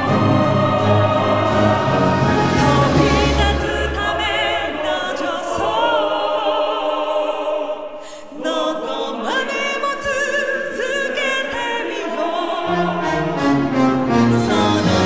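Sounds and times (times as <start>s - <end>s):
orchestra strings: 0.0s - 6.7s, 11.9s - 15.0s
choir singing with vibrato: 0.0s - 15.0s.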